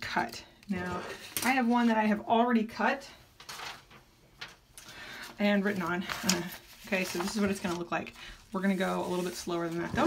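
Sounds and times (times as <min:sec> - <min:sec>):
paper rustling: 0:03.4 - 0:10.0.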